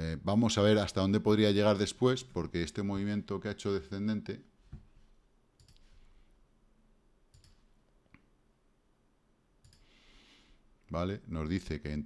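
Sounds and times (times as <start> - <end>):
computer mouse clicks: 5.6 - 5.9, 7.3 - 8.2, 9.6 - 9.9.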